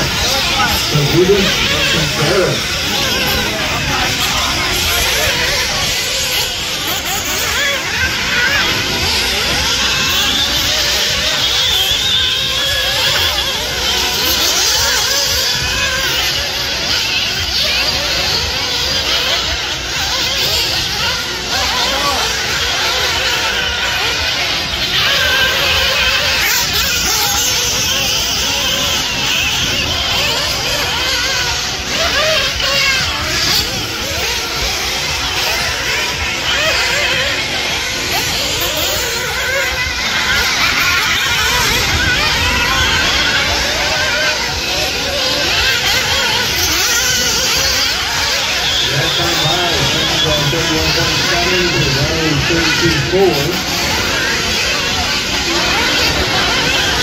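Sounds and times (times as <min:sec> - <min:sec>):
rc buggy motors whining: 0:00.0 - 0:57.0.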